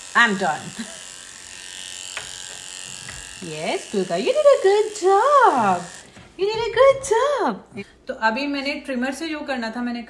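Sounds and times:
electric pet clipper running: 0:00.0 - 0:06.4.

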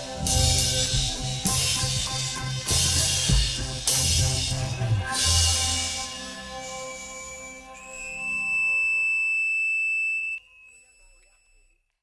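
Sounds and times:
sustained high ringing tone: 0:05.2 - 0:11.7.

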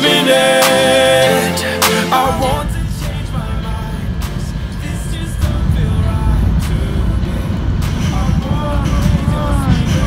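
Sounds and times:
background music: 0:00.0 - 0:10.0
train low rumble: 0:02.1 - 0:10.0.

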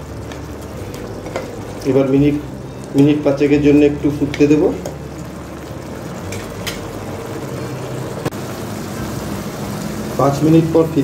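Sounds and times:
gravy bubbling and sizzling in wok: 0:00.0 - 0:11.0.

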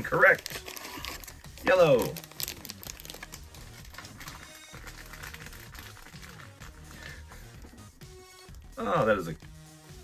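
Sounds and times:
plastic packaging crinkling: 0:00.0 - 0:07.1
quiet background music: 0:00.0 - 0:10.0.

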